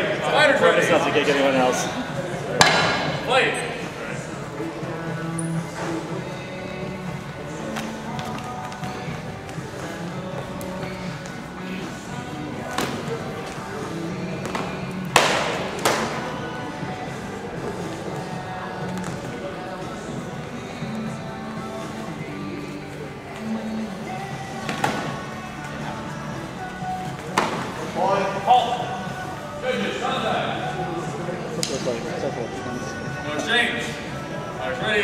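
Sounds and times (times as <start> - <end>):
faint voices: 0.0 - 35.0.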